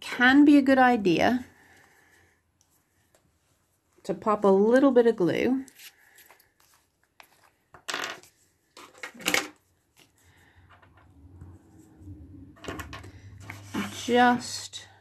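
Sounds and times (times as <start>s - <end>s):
faint rubbing: 10.6s - 14.5s.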